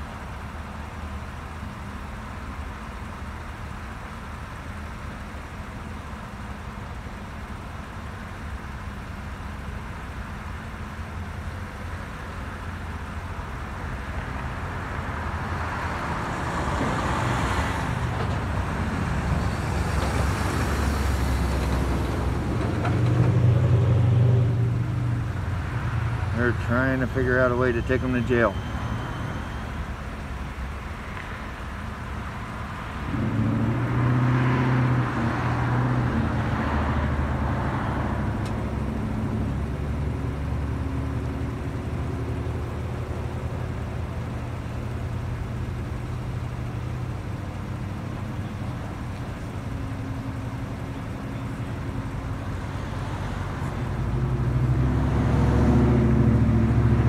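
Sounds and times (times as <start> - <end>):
road traffic passing: 0.0 - 57.0
vehicle passing close: 14.0 - 29.8, 32.5 - 46.0, 46.7 - 57.0.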